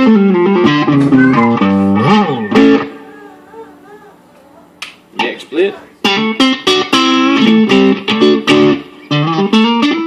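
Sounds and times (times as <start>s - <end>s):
faint electric guitar notes: 0.0s - 4.2s.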